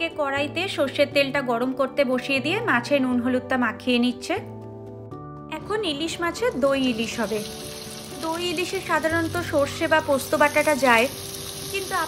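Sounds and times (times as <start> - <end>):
fish sizzling in hot oil: 6.3 - 12.0.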